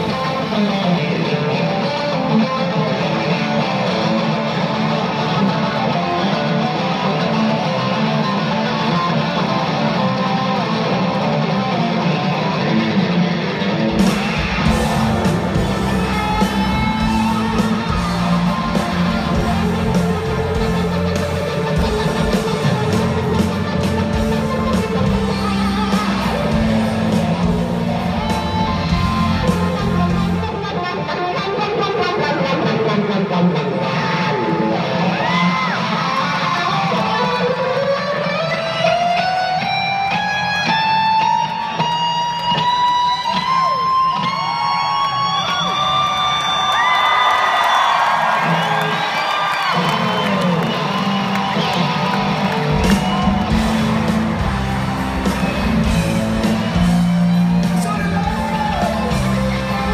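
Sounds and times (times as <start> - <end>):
live rock band through speakers: 0.0 - 59.9.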